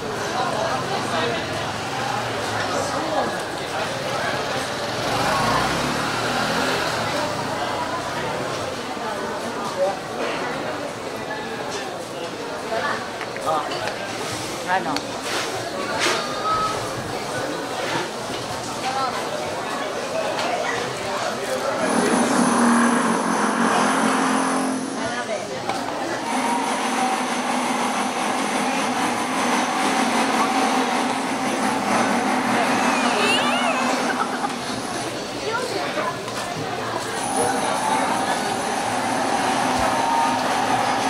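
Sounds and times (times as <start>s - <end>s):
crowd chatter: 0.0s - 41.0s
low engine-like hum: 20.8s - 41.0s
machine hum with high whine: 21.7s - 25.1s.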